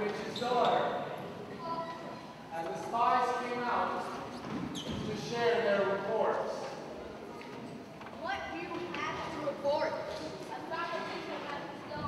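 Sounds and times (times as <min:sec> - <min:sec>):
children speaking in echoing hall: 0:00.0 - 0:12.0.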